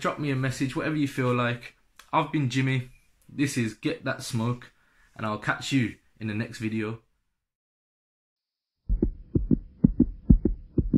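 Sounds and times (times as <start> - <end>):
heartbeat thumps: 8.9 - 10.9.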